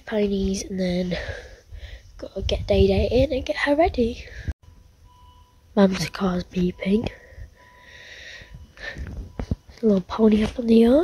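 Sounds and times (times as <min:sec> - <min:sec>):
soft breath on microphone: 0:01.1 - 0:02.2, 0:07.1 - 0:09.7
car warning beeper tone: 0:04.6 - 0:11.0.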